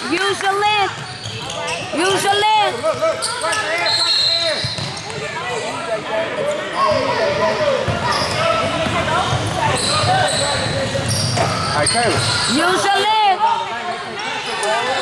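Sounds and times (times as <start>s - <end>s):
hubbub of voices in hall: 0.0s - 15.0s
shoe squeaks: 0.9s - 5.3s, 8.0s - 13.0s.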